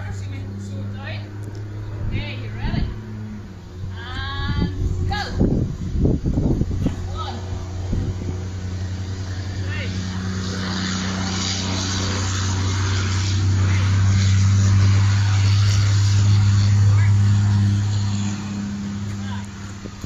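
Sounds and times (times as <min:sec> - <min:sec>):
low engine hum: 0:00.0 - 0:20.0.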